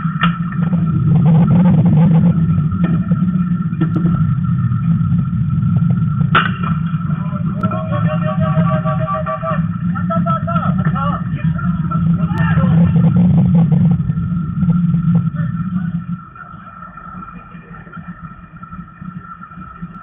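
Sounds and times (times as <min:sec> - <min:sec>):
low rumble of field noise: 0:00.0 - 0:20.0.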